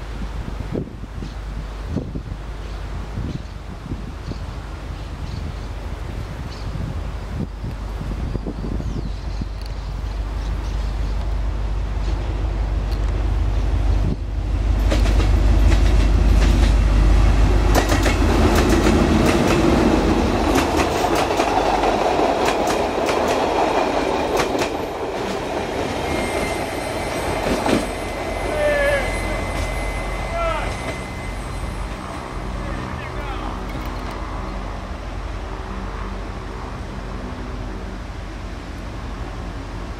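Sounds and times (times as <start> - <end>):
locomotive engine rumble: 7.0 - 36.5
train wheels clicking on rail joints: 10.4 - 32.6, 33.5 - 34.3.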